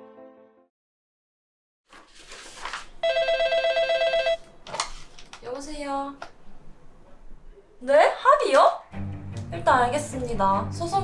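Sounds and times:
telephone ringer warbling: 3.0s - 4.4s.

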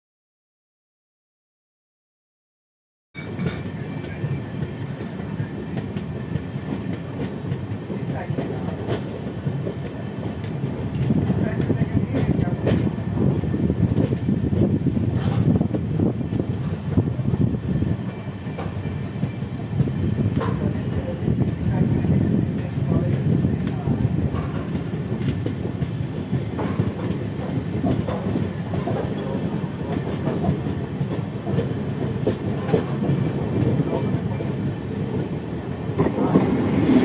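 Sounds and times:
rail joint clicks: 3.2s - 37.0s
train wheels rumbling on rails: 3.2s - 37.0s.

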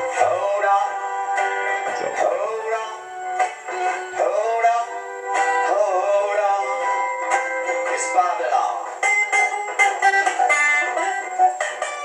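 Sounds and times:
man singing reggae song: 0.0s - 3.1s, 3.9s - 9.1s
strummed guitar: 0.0s - 12.0s.

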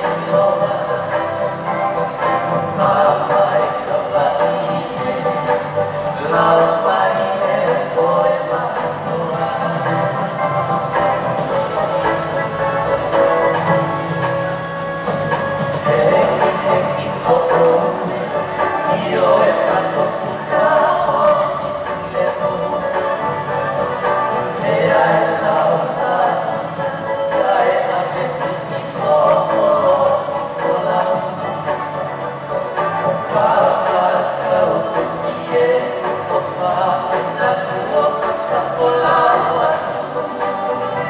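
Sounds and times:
group of voices singing: 0.0s - 41.0s
music with a steady beat: 0.0s - 41.0s.

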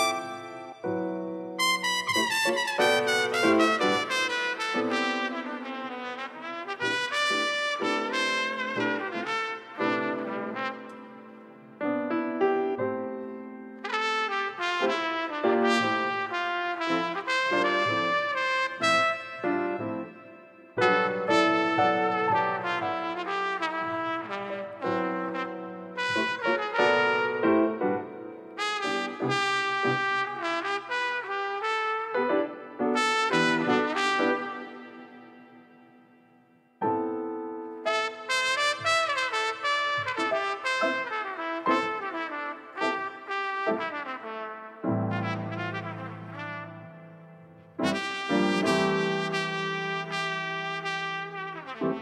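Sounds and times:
instrumental smooth jazz: 0.0s - 35.4s, 36.8s - 52.0s.

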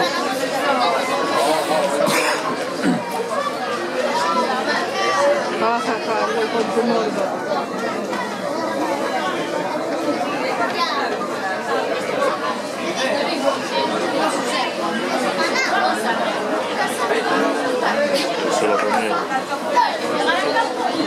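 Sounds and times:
spectators chatting: 0.0s - 21.0s.

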